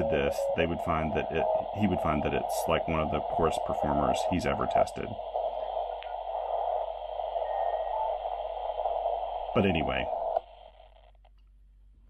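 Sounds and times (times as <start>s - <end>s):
radio band noise hiss: 0.0s - 11.2s
radio click: 0.0s - 11.5s.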